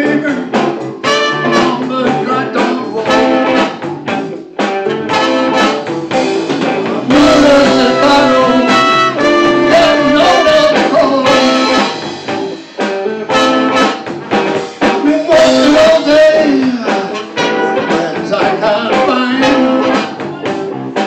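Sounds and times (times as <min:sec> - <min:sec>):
blues band playing: 0:00.0 - 0:21.0
horn stabs: 0:00.2 - 0:20.3
held horn lines: 0:07.1 - 0:11.9.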